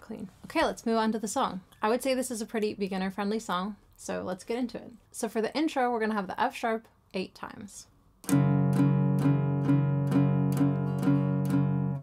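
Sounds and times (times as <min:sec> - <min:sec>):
acoustic guitar down-strums: 0:08.2 - 0:12.0.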